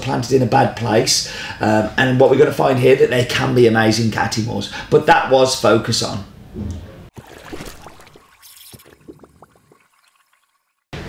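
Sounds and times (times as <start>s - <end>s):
liquid dripping and trickling: 7.1s - 10.9s.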